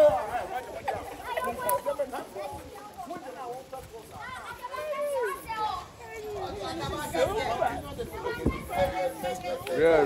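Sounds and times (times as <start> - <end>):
voices talking and calling out: 0.0 - 10.0.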